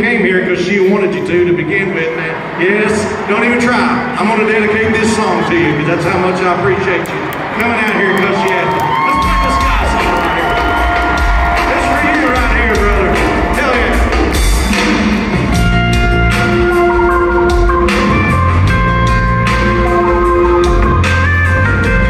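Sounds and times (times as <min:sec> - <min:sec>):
crowd cheering and whooping: 0:01.8 - 0:15.6
live country band playing: 0:09.1 - 0:22.0.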